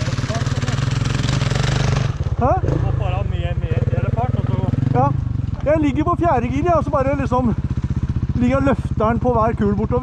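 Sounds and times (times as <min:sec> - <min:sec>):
motorcycle engines idling: 0:00.0 - 0:10.0.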